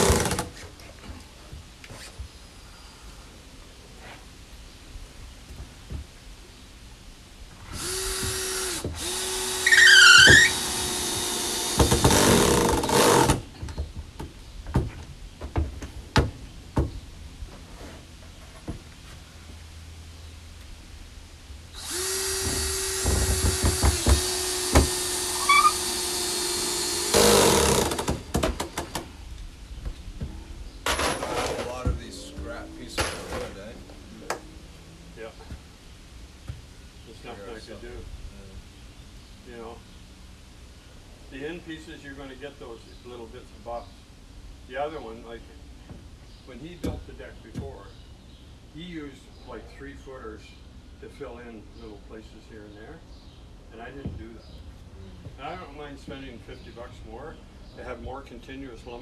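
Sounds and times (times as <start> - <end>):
cordless drill driving screws: 0.0 - 0.5, 7.7 - 13.4, 21.8 - 28.4.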